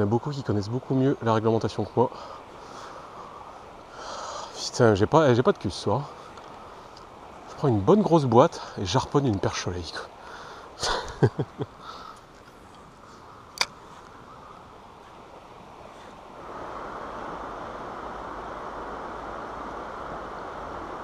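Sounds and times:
person laughing: 0:10.8 - 0:11.8
river water rushing over weir: 0:11.7 - 0:21.0
sharp click: 0:13.6 - 0:13.8.

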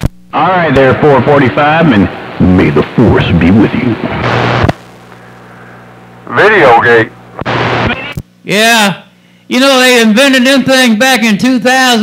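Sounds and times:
radio static burst: 0:00.0 - 0:08.3
low steady hum: 0:00.0 - 0:12.0.

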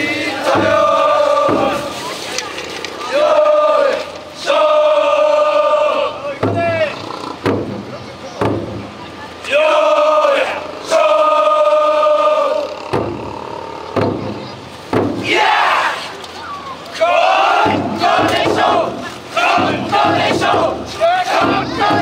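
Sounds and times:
long call by many voices: 0:00.0 - 0:22.0
men shouting together: 0:17.0 - 0:22.0.

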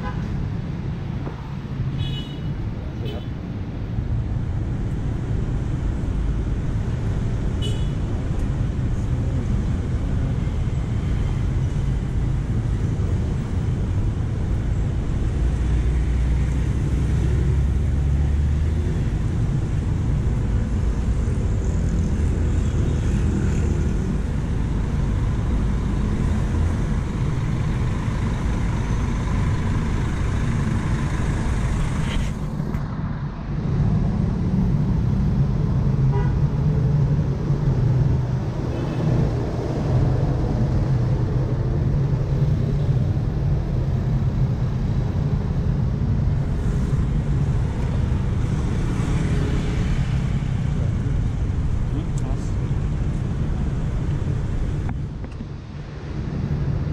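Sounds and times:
buses passing: 0:00.0 - 0:56.9
bus engine running close: 0:08.1 - 0:56.9
motorcycles passing: 0:36.6 - 0:56.9.

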